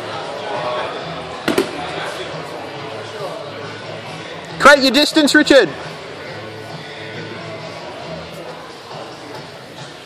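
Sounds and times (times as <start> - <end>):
murmur of voices: 0.0 - 10.0
slaps on a mat: 1.5 - 1.8.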